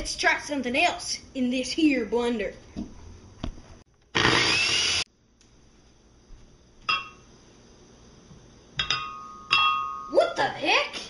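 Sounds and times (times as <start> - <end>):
blender motor: 4.1 - 5.1.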